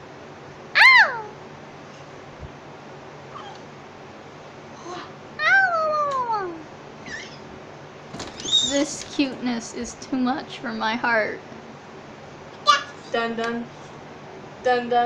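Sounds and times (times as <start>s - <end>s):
baby squealing: 0.8s - 1.4s, 5.4s - 7.5s, 8.4s - 8.8s.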